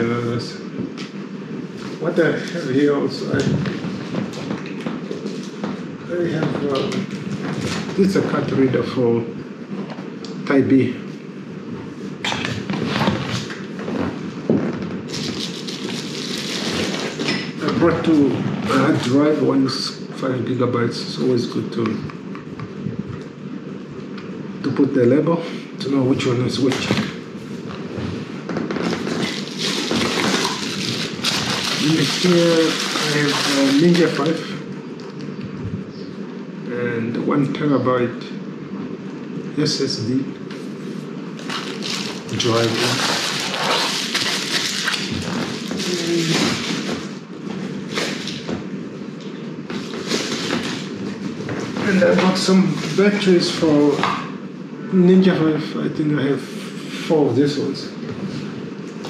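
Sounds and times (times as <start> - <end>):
plastic bubble wrap crinkling: 12.8 - 17.2, 28.5 - 34.5, 41.4 - 47.2.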